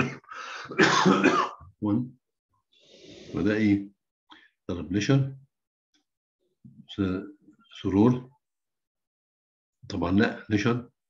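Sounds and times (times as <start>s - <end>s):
man clearing his throat: 0.0s - 1.6s.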